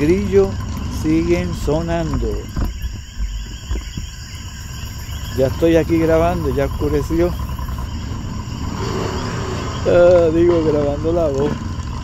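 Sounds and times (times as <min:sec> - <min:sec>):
crickets chirring: 0:00.0 - 0:12.0
low steady rumble: 0:00.0 - 0:12.0.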